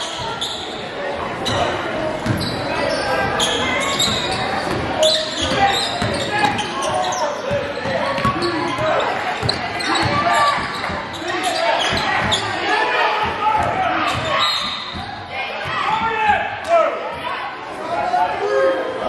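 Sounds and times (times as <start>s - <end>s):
echoing voices: 0.0s - 19.0s.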